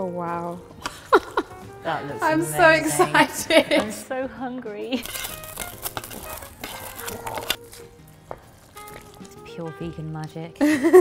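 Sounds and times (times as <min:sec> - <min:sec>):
faint music: 0:00.0 - 0:11.0
metal utensil scraping metal tray: 0:05.0 - 0:07.6.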